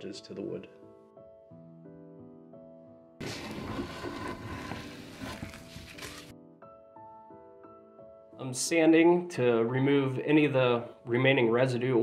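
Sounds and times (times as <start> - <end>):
soft piano-like background music: 0.0 - 12.0
brush scrubbing wooden seat: 3.2 - 6.3.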